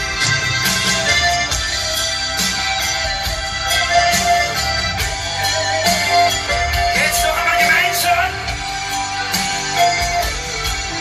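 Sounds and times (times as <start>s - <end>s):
live band playing folk-pop: 0.0s - 11.0s.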